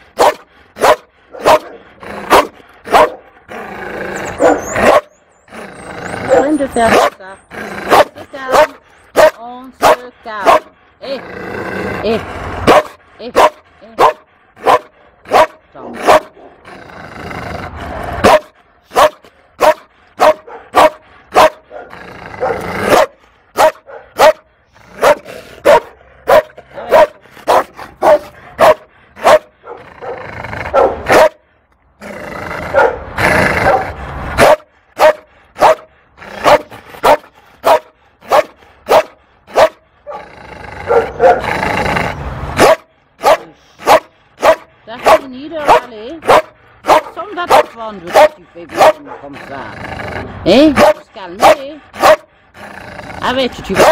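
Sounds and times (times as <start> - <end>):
dog growling: 0.0 - 23.6, 24.6 - 31.3, 31.9 - 42.6, 43.3 - 53.9
dog barking: 0.2 - 3.3, 4.3 - 5.1, 6.3 - 7.2, 7.9 - 10.8, 12.6 - 16.5, 18.2 - 31.4, 32.7 - 40.2, 40.8 - 41.5, 42.6 - 49.4, 50.7 - 52.3, 53.7 - 53.9.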